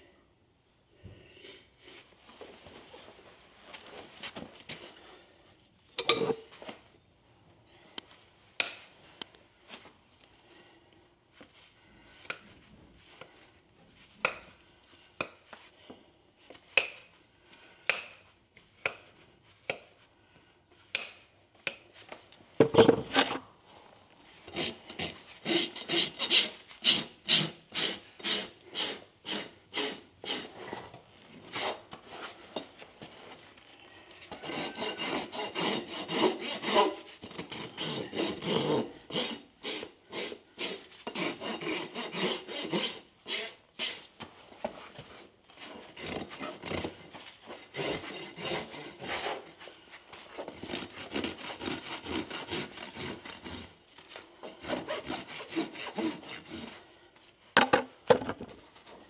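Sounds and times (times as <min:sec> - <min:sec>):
rasp filing hoof: 0:24.5 - 0:32.7, 0:34.2 - 0:56.9.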